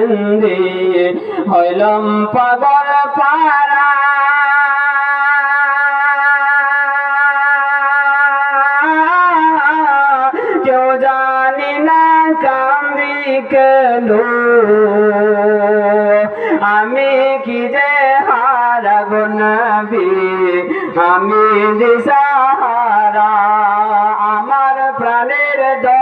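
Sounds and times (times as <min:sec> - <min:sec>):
man singing into a microphone: 0:00.0 - 0:26.0.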